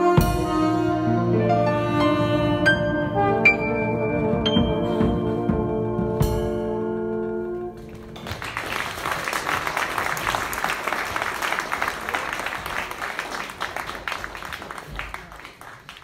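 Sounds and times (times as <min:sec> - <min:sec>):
audience applauding: 0:07.8 - 0:16.0.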